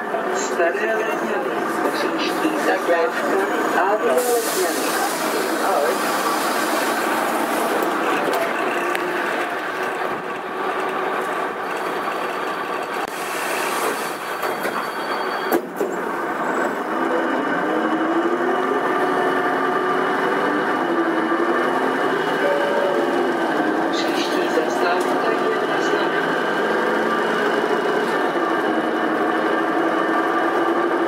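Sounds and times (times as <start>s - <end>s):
bus engine and road noise: 0.0s - 31.0s.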